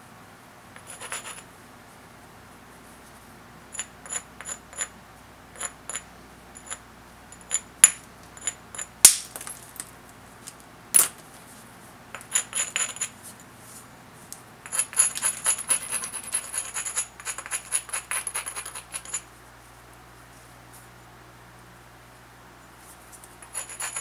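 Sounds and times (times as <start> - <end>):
stone grinding glassy edge: 14.7 - 19.2, 23.4 - 24.0.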